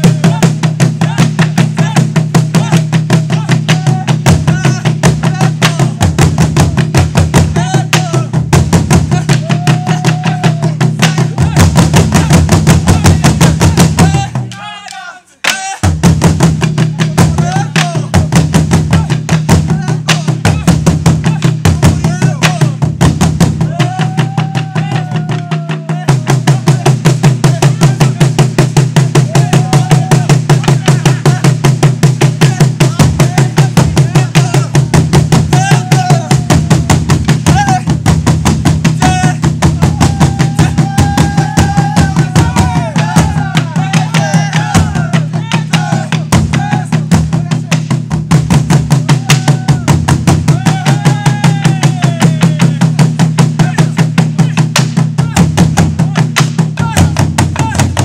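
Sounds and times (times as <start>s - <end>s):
drums beaten with sticks: 0.0s - 58.0s
voices calling out: 9.1s - 15.9s, 17.0s - 18.3s, 29.0s - 31.6s, 35.5s - 37.9s, 39.0s - 47.7s.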